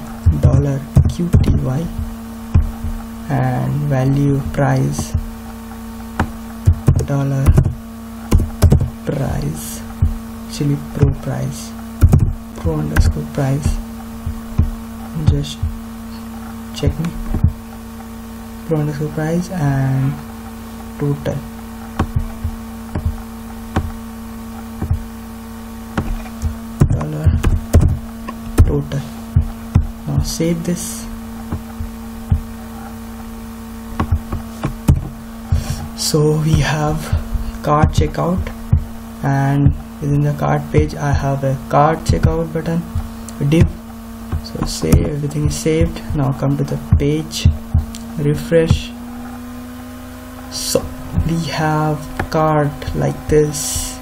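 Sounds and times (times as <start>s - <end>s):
electrical hum: 0.0s - 54.0s.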